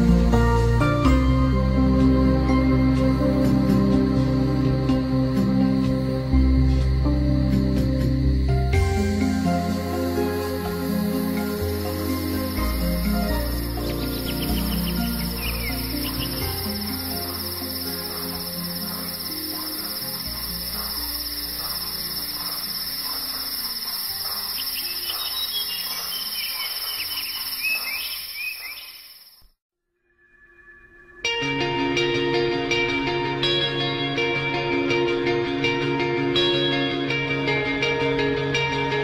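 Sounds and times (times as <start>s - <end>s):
soft new-age music: 0.0s - 28.5s
insect drone: 1.5s - 29.5s
bird chirps: 11.8s - 29.5s.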